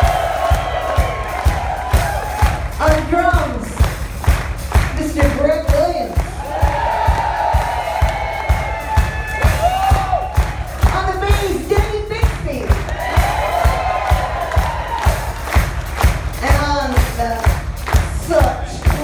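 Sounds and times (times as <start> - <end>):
steady drum beat: 0.0 - 19.0.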